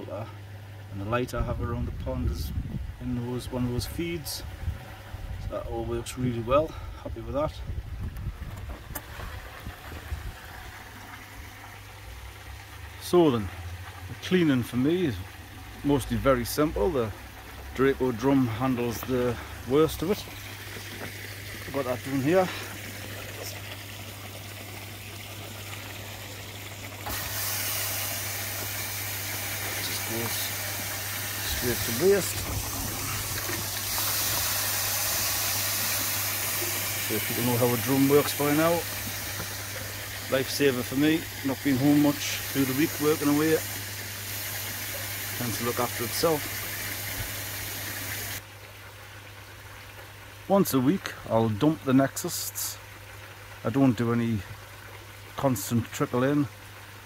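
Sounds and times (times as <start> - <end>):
pump hum: 0.0 - 57.0
water running through filter: 0.0 - 57.0
hissing water spray: 16.0 - 48.4.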